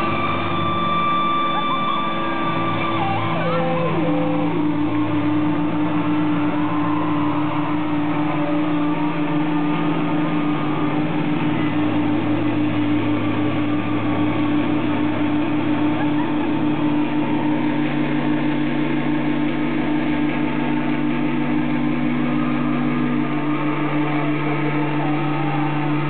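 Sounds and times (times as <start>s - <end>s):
electric guitar feedback drone: 0.0s - 26.0s.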